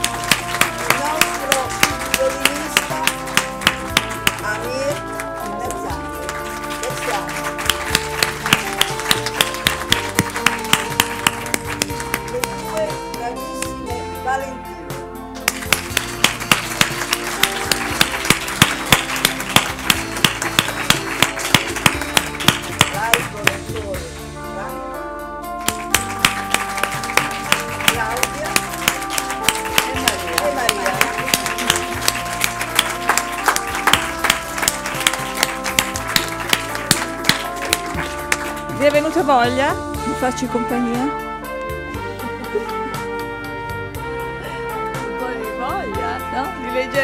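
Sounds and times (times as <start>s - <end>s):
applause: 0.0s - 13.0s, 15.4s - 24.1s, 25.6s - 39.2s
music with held notes: 0.0s - 47.0s.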